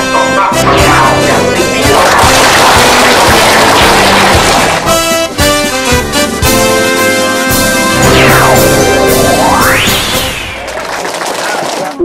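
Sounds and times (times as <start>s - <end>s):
held chords: 0.0s - 3.4s, 4.7s - 10.8s
steady drum beat: 0.5s - 10.8s.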